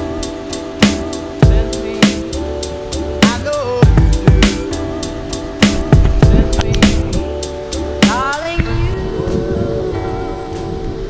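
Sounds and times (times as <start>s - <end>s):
background music with held tones: 0.0s - 11.0s
gliding note: 4.3s - 11.0s.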